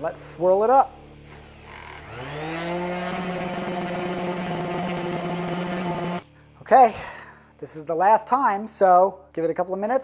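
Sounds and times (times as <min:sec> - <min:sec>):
electric polisher motor running: 0:01.4 - 0:06.2.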